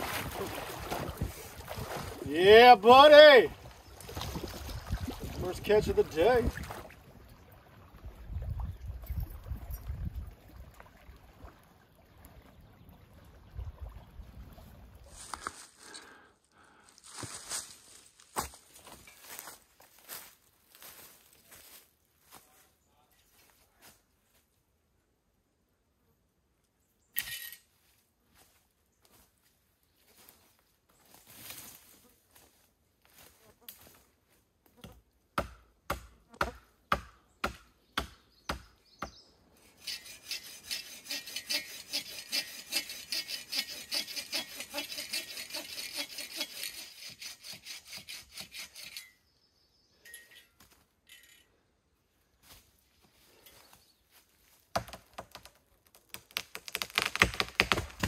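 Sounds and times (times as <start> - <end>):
hand saw cutting log: 39.6 - 49.2.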